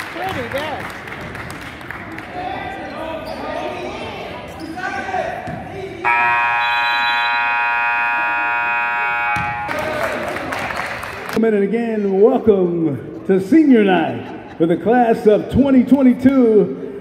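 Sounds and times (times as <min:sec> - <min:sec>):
scoreboard horn buzz: 0:06.0 - 0:10.1
basketball bouncing on court: 0:09.3 - 0:10.0.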